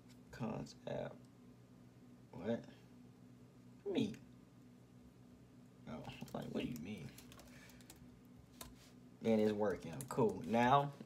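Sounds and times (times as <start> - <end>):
computer keyboard keystrokes: 6.1 - 8.0.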